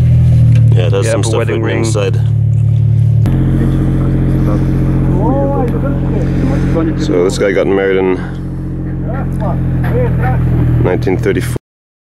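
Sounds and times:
engine droning: 0:00.0 - 0:11.6.

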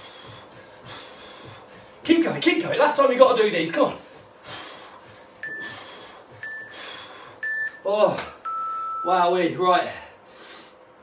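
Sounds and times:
hard breathing: 0:00.0 - 0:02.1, 0:03.8 - 0:07.6, 0:09.9 - 0:11.0
short high beeps: 0:08.4 - 0:09.2.

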